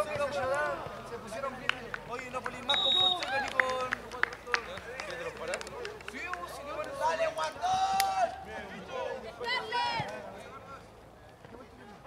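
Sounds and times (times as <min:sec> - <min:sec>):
people calling out and talking: 0:00.0 - 0:12.0.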